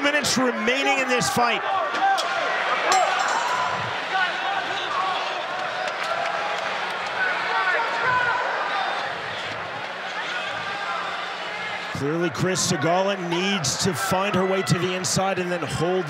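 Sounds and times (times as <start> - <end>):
din of crowd voices: 0.0 - 16.0
spectators shouting: 0.0 - 16.0.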